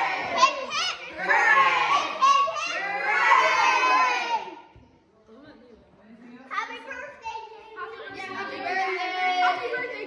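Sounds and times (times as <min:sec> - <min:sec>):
children shouting together: 0:00.0 - 0:04.7.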